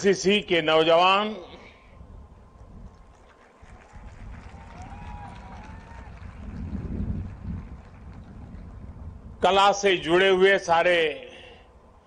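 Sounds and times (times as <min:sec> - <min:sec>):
low wind rumble on microphone: 0:01.8 - 0:10.7.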